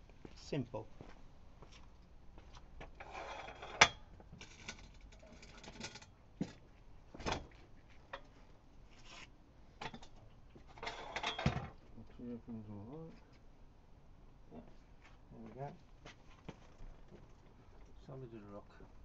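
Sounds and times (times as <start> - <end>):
footsteps: 1.0 - 2.7.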